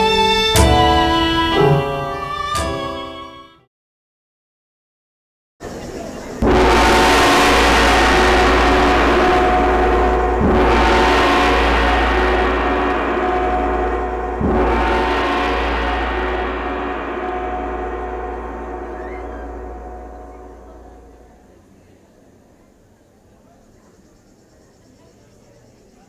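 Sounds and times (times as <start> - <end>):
gong ringing: 0.0 - 3.0, 6.4 - 21.6.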